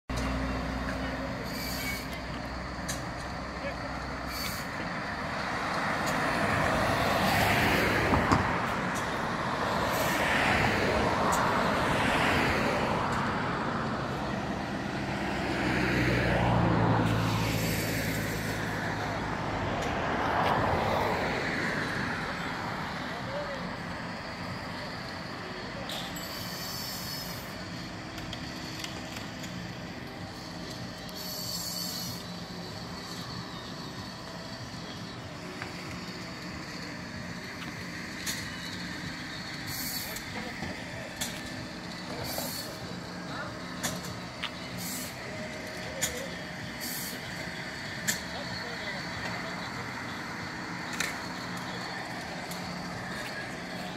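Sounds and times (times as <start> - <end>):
truck engine low drone: 0.1 - 53.9
vehicles passing by: 0.1 - 53.9.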